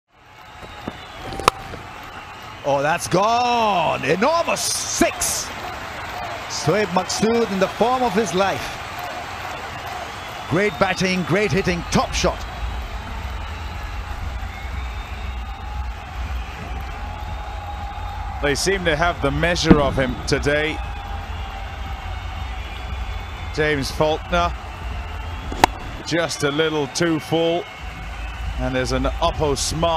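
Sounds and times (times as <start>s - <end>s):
stadium background noise: 0.1s - 29.9s
faint crowd noise: 0.3s - 29.9s
cricket bat striking ball: 0.6s - 1.9s, 25.5s - 26.1s.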